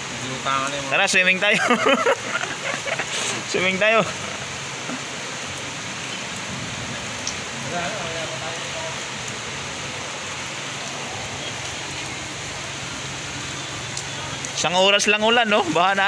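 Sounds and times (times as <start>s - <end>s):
rain falling on water: 0.0s - 16.0s.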